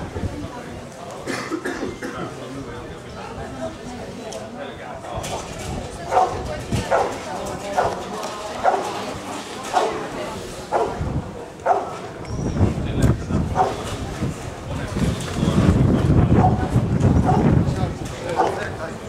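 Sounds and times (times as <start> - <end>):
dog barking: 6.1 - 7.2, 8.6 - 9.0, 9.7 - 10.0, 10.7 - 11.0, 11.6 - 12.0, 13.6 - 13.8, 18.4 - 18.6.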